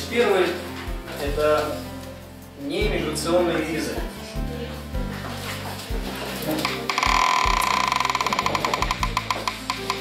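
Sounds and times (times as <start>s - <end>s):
marker squeaking on whiteboard: 6.7s - 10.0s.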